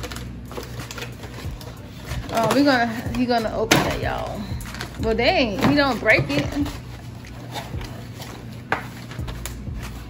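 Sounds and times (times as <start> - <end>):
cardboard packaging handled: 0.0 - 10.0.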